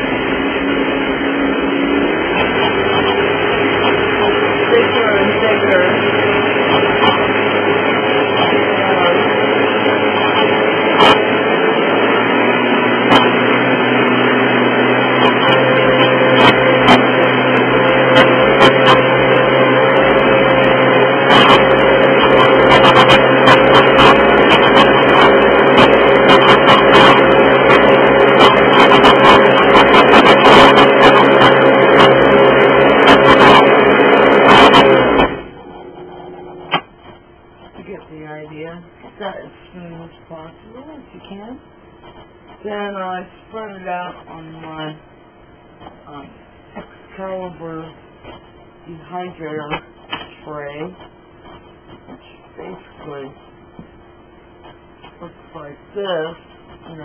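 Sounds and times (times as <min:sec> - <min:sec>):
blender motor running: 0:00.0 - 0:37.0.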